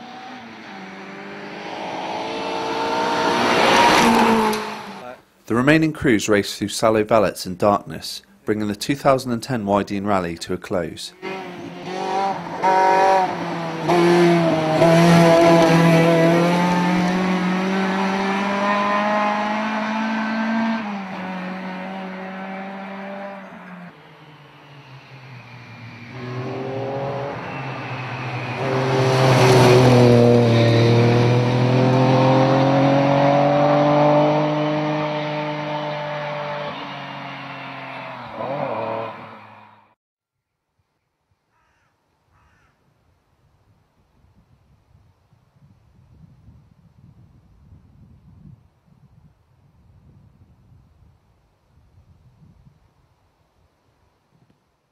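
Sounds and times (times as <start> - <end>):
engine revving through gears: 0.0 - 5.0, 11.2 - 25.2, 26.0 - 39.9
rally cars passing at speed: 0.0 - 5.0, 11.2 - 40.0.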